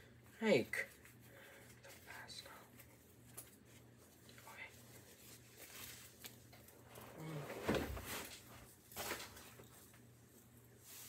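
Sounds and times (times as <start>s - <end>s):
low steady hum: 0.0s - 11.0s
cloth rustling: 2.7s - 10.1s.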